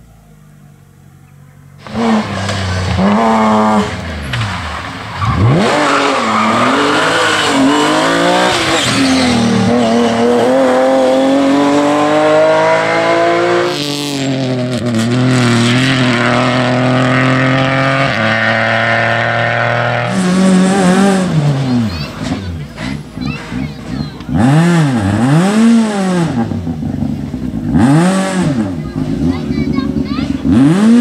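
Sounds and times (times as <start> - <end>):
rally car engines high revs: 1.8 - 31.0.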